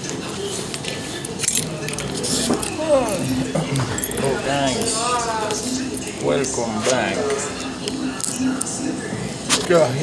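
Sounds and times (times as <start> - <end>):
paper tickets clinking and rustling: 0.0 - 8.8.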